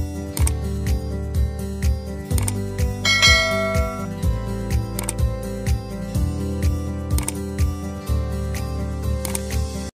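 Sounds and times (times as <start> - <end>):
background music with steady beat: 0.0 - 9.9
bell chime: 3.1 - 4.1.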